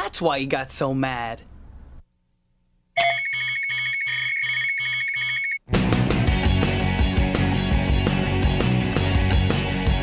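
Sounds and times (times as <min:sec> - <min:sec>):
electronic alarm beeping: 0:03.0 - 0:05.6
steady high tone: 0:03.0 - 0:05.6
rock music with electric guitar: 0:05.7 - 0:10.0.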